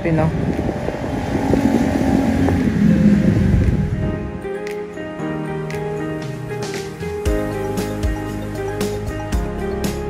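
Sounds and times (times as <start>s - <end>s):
vehicle engine rumbling: 0.0s - 4.3s.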